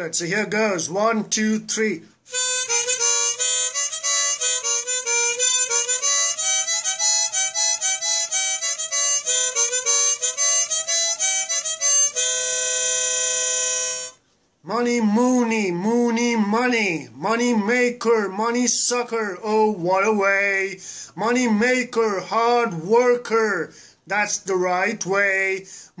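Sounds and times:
harmonica solo: 0:02.2 - 0:14.4.

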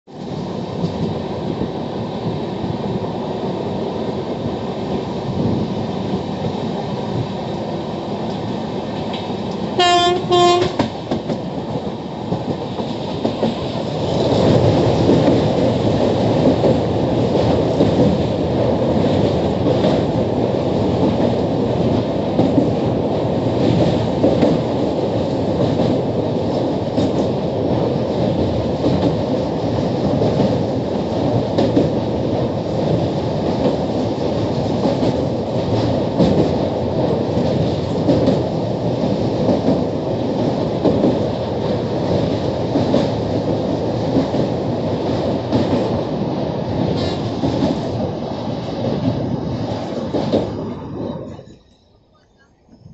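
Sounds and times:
train wheels on rails: 0:00.1 - 0:52.9
train horn blasts: 0:09.8 - 0:10.9.

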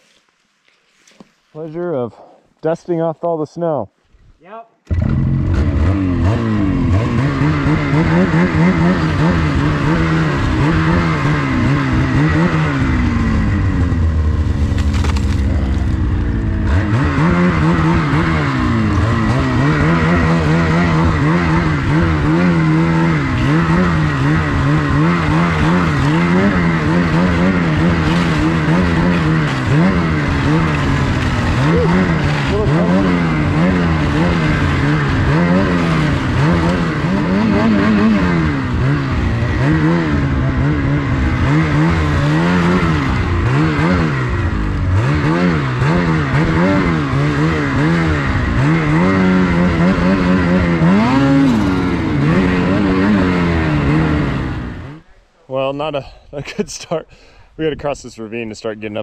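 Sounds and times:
snowmobile engine revving: 0:04.9 - 0:57.0.

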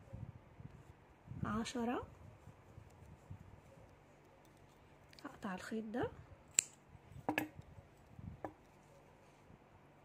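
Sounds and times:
scissors snipping yarn: 0:06.5 - 0:06.8.

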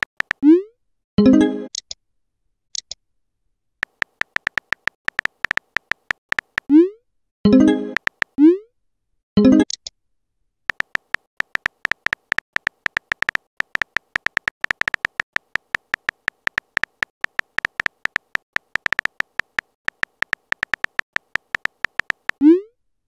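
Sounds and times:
smartphone keyboard tapping clicks: 0:00.0 - 0:00.4, 0:03.8 - 0:06.7, 0:07.9 - 0:08.4, 0:10.7 - 0:22.4.

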